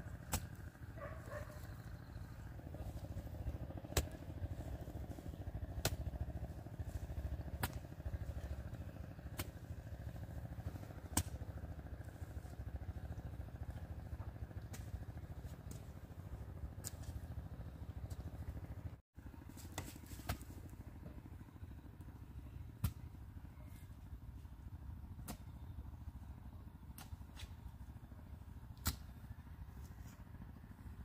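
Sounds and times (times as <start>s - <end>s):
hoe chopping soil: 0.1s - 12.7s, 13.4s - 16.1s, 19.5s - 20.6s, 22.7s - 23.8s, 25.1s - 25.7s, 26.9s - 27.8s, 28.7s - 30.2s.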